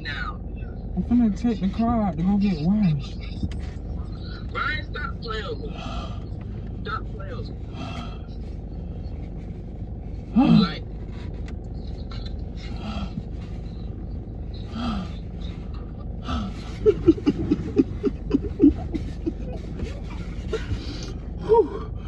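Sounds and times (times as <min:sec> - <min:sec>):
low rumble: 0:00.0 - 0:22.0
man laughing: 0:14.7 - 0:21.9
man moaning: 0:16.1 - 0:20.8.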